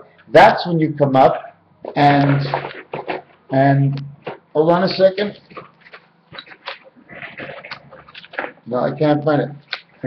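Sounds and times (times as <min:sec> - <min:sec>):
rustling: 0:01.8 - 0:03.6, 0:04.2 - 0:10.0
objects clicking and knocking: 0:01.9 - 0:03.4, 0:05.3 - 0:08.7.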